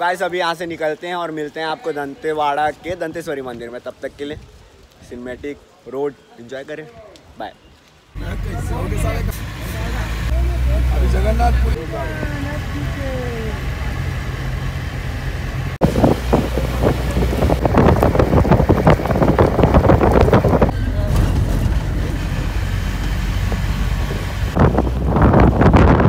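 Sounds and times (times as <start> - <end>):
engine and road rumble: 8.0 - 26.0
wind buffeting microphone: 15.8 - 26.0.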